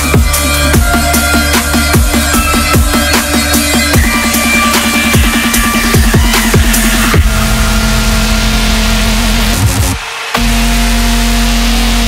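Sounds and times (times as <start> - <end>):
dubstep music: 0.0 - 12.0.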